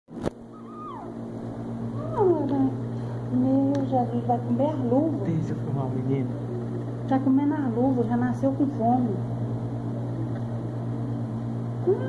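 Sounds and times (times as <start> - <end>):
steady low hum: 0.1 - 12.0
baby crying: 0.6 - 1.2.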